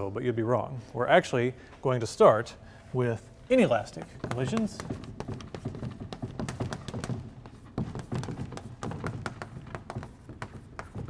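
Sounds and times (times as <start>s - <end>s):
chalk on blackboard: 3.6s - 11.0s.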